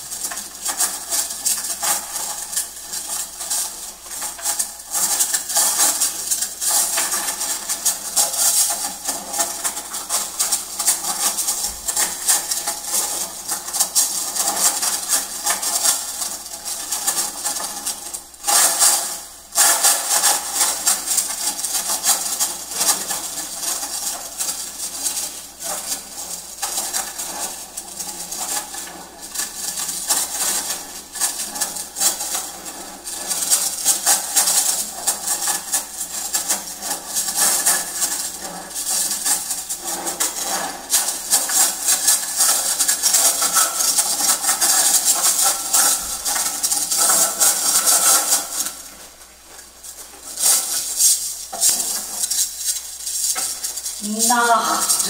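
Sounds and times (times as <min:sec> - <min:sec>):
small objects clattering on a tabletop: 0:00.0 - 0:55.0.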